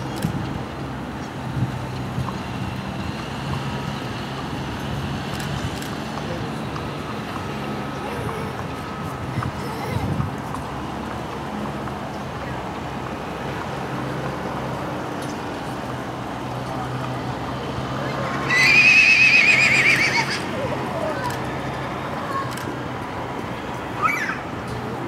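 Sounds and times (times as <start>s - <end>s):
horse whinnying: 18.4s - 20.6s.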